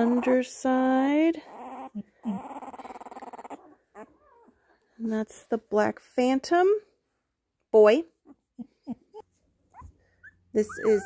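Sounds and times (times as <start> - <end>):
puppy squeaking and whimpering: 1.4 - 4.6, 8.2 - 11.0.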